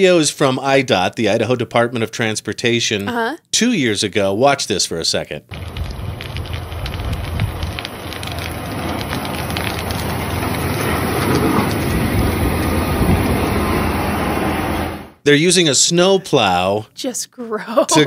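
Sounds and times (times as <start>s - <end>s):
dense crunching and crackling: 5.5s - 13.9s
diesel engine rumble: 5.5s - 15.2s.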